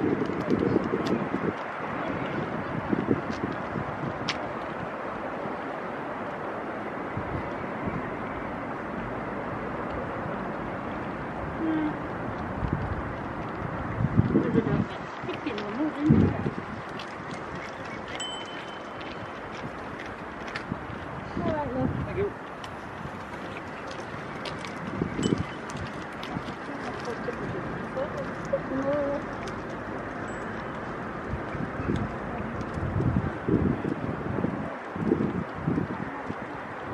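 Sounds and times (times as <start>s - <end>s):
wind on microphone: 0.0s - 9.1s, 9.9s - 36.9s
steady outdoor hiss: 0.0s - 36.9s
high ringing tone: 18.2s - 19.4s, 30.2s - 31.0s.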